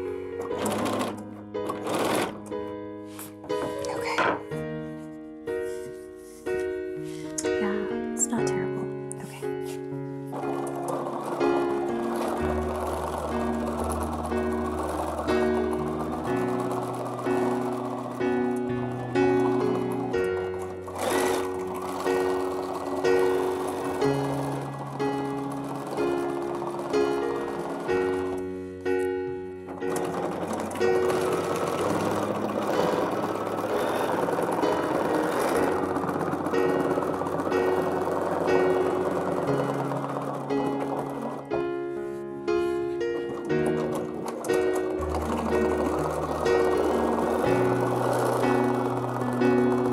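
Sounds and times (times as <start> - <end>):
sewing machine running: 0.0 - 2.7, 10.1 - 49.9.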